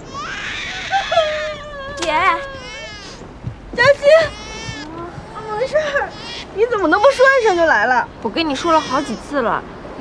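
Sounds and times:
baby crying: 0.0 - 7.9, 8.5 - 9.3.

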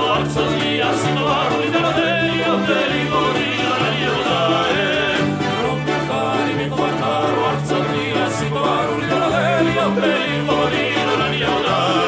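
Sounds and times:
electric bass: 0.0 - 12.0
keyboard: 0.0 - 12.0
man singing: 0.0 - 12.0
strummed lute: 0.0 - 12.0.

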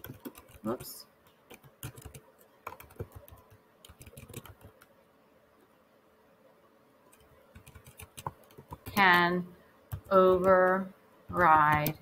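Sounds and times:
keyboard keystrokes: 1.5 - 4.9.

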